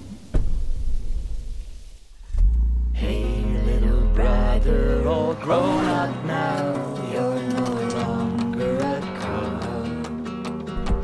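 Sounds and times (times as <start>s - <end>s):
car engine rumbling: 0.0s - 5.4s.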